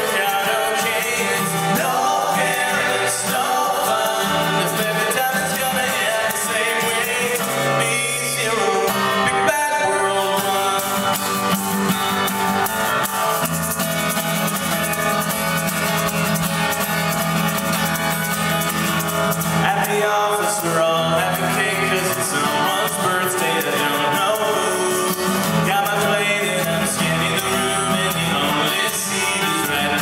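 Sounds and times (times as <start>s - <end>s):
men singing folk-pop song: 0.0s - 11.6s, 19.4s - 30.0s
acoustic guitar strumming: 0.0s - 30.0s.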